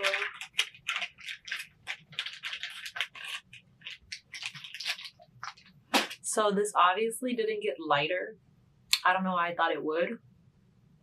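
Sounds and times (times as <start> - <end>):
makeup wipe rubbing: 0.0 - 5.7.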